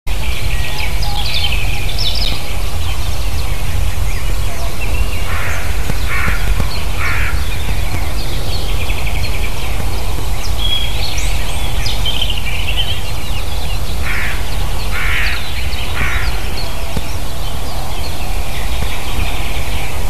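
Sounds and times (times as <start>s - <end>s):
small birds chirping: 0.1s - 20.0s
steady low rumble: 0.1s - 20.0s
wild birds calling: 0.1s - 20.0s.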